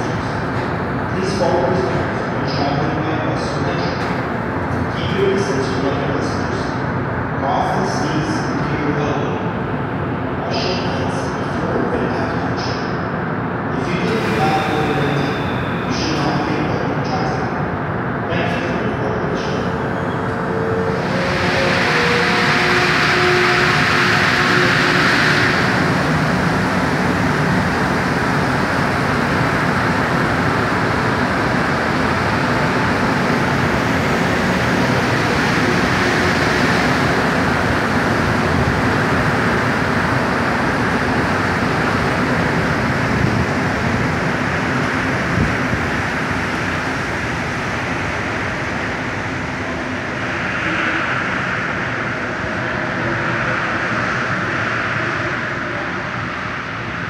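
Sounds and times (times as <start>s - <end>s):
train rumble and hiss: 0.0s - 57.0s.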